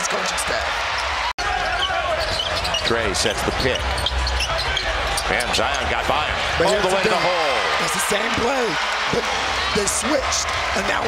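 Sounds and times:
arena crowd noise: 0:00.0 - 0:11.0
sneaker squeaks on court: 0:01.7 - 0:05.5.

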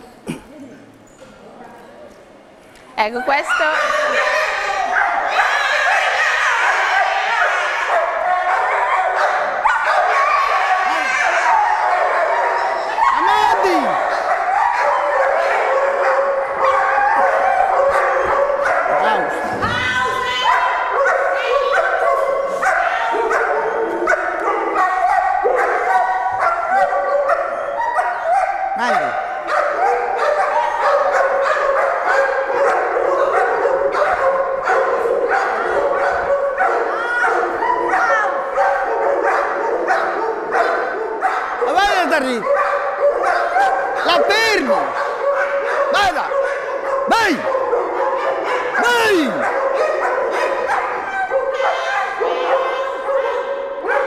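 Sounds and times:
dogs barking and yelping: 0:03.1 - 0:54.0
dogs whining: 0:07.9 - 0:41.7.

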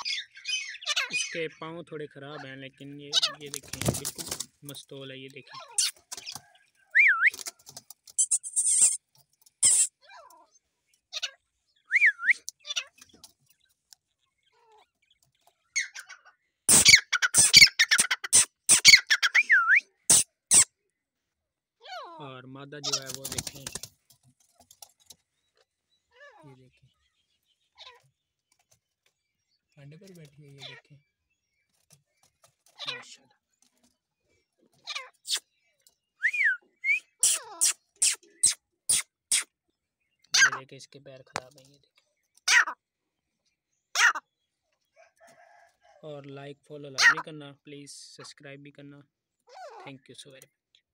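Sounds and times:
partridge calling harshly: 0:00.0 - 0:01.6, 0:05.4 - 0:10.3, 0:15.7 - 0:20.8, 0:34.8 - 0:35.5, 0:36.8 - 0:39.6, 0:40.3 - 0:40.7, 0:42.4 - 0:42.8, 0:43.9 - 0:44.3, 0:47.0 - 0:47.3
whistled bird note: 0:06.9 - 0:07.4, 0:11.8 - 0:12.5, 0:36.2 - 0:37.3.

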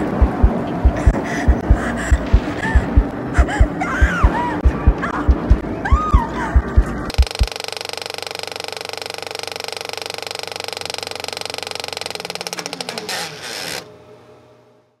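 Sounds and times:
low musical thumps: 0:00.0 - 0:07.5
film projector clatter and whirr: 0:07.1 - 0:14.0.

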